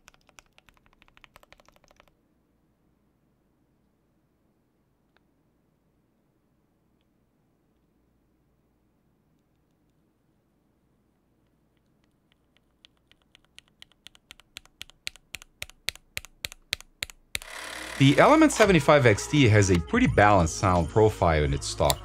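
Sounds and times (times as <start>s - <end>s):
mechanical keyboard typing: 0.0s - 2.2s, 12.0s - 18.6s.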